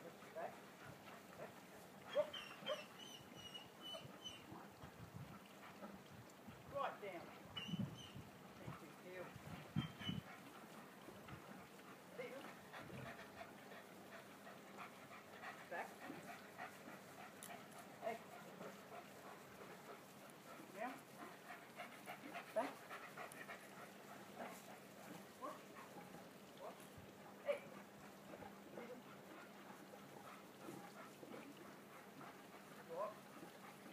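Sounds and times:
dog panting: 0:00.0 - 0:06.1, 0:07.1 - 0:33.9.

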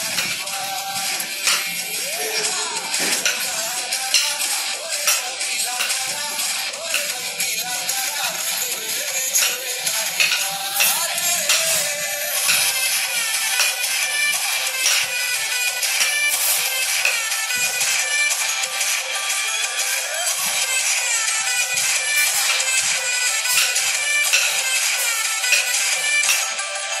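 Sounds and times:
dance music with steady beat: 0:00.0 - 0:27.0.

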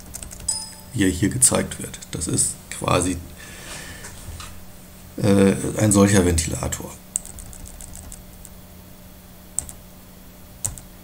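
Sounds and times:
computer keyboard clicks: 0:00.0 - 0:00.6, 0:07.2 - 0:08.6, 0:09.6 - 0:09.8, 0:10.6 - 0:10.9.

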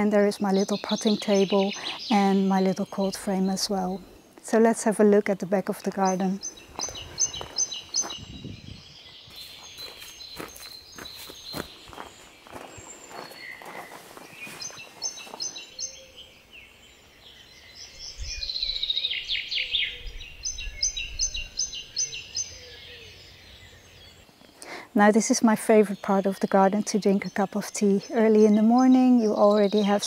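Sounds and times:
songbirds chirping: 0:00.0 - 0:30.0
footsteps on gravel: 0:06.6 - 0:08.3, 0:09.3 - 0:15.7.

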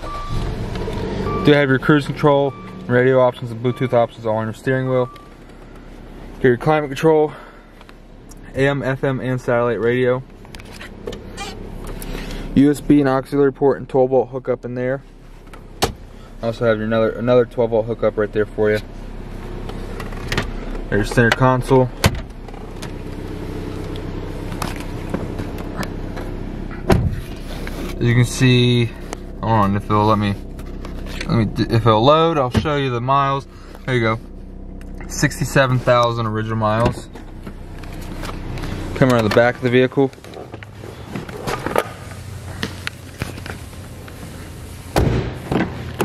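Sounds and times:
car engine idling: 0:00.0 - 0:46.0
low steady hum: 0:00.0 - 0:46.0
car door thud: 0:15.8 - 0:16.1, 0:26.8 - 0:27.3, 0:44.9 - 0:46.0.

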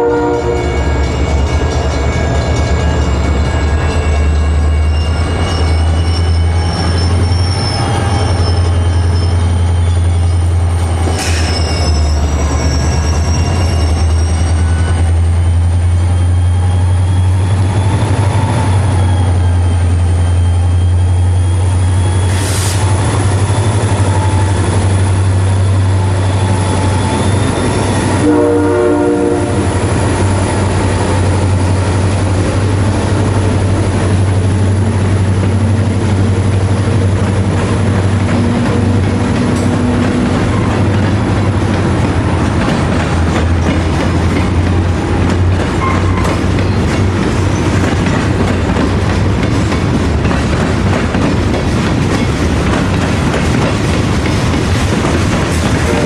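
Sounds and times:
multi-note air horn blast: 0:00.0 - 0:00.8, 0:28.2 - 0:29.7
diesel locomotive engine drone: 0:00.0 - 0:56.0.

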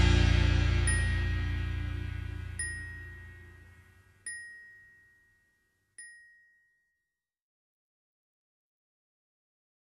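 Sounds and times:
high bell-like notes: 0:00.0 - 0:07.2.

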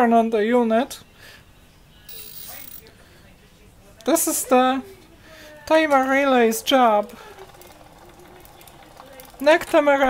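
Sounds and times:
faint motor running: 0:02.1 - 0:02.9, 0:06.4 - 0:10.0
light irregular ticking: 0:05.9 - 0:09.9.

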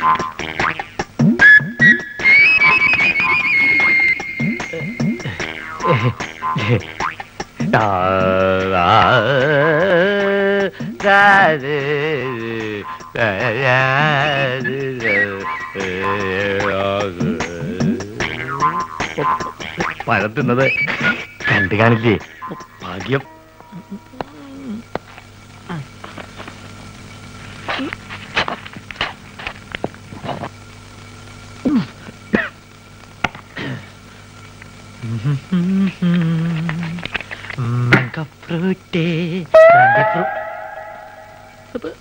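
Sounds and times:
loud ringing tone: 0:02.4 - 0:05.9, 0:39.6 - 0:41.8.

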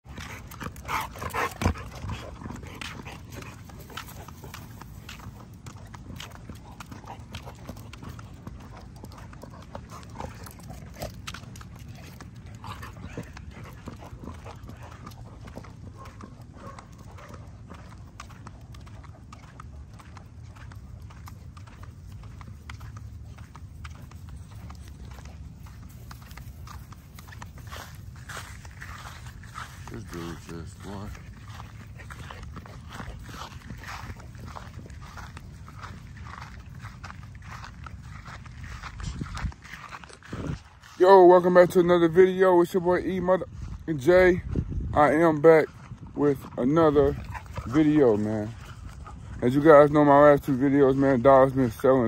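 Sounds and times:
puppy claws clicking on concrete: 0:00.1 - 0:38.4.

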